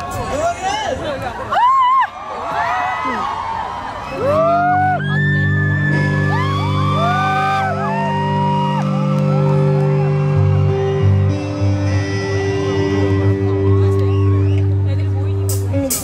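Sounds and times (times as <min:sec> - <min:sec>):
crowd screaming and whooping: 0:01.4 - 0:15.0
live rock band: 0:04.2 - 0:16.0.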